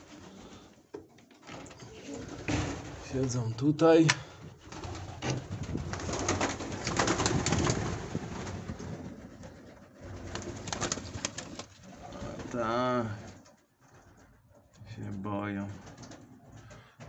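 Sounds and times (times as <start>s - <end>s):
pigeons cooing: 1.6s - 3.0s, 4.2s - 14.7s
pigeons flapping wings: 1.6s - 3.4s, 4.0s - 14.7s, 15.6s - 16.9s.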